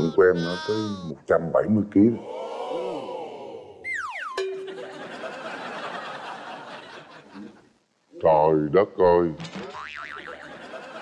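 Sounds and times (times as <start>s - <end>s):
cartoon whistle sliding down: 3.8s - 4.4s.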